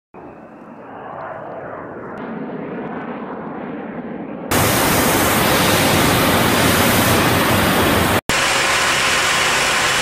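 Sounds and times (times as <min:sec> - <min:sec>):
jet bomber engines roaring: 0:00.2 - 0:10.0.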